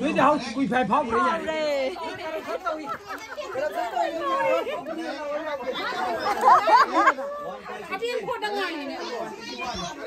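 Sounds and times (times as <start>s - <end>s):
women chattering: 1.2s - 10.0s.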